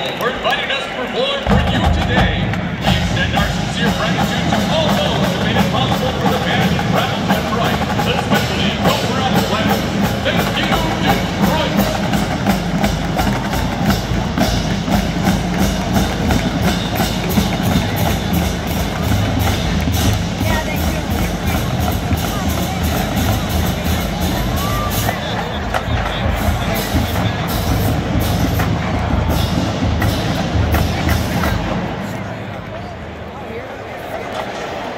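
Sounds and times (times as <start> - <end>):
stadium crowd noise: 0.0 - 34.9
drumline playing a cadence: 1.4 - 32.6.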